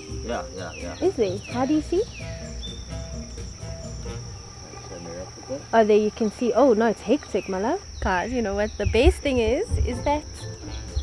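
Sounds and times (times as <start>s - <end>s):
insects trilling: 0.0s - 11.0s.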